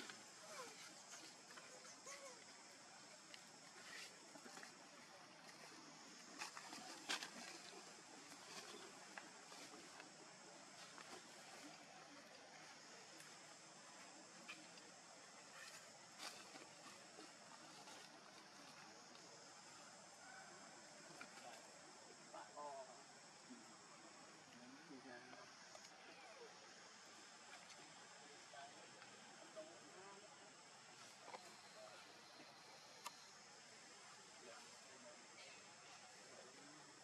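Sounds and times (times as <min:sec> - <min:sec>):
faint outdoor hiss: 0:00.0 - 0:37.0.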